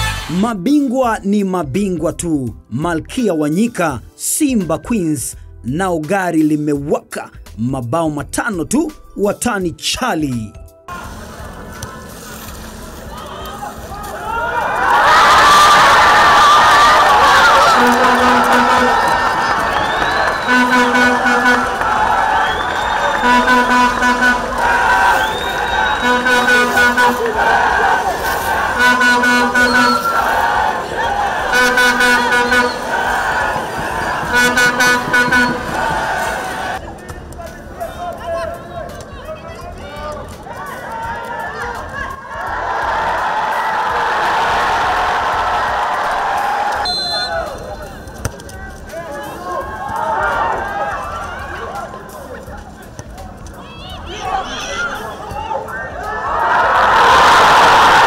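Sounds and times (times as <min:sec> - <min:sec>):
group chanting and shouting: 0:14.2 - 0:48.0.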